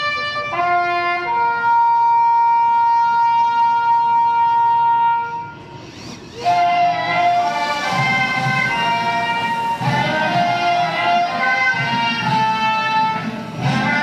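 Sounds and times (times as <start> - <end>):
brass band playing: 0.0 - 14.0
horn holding long high note: 0.0 - 14.0.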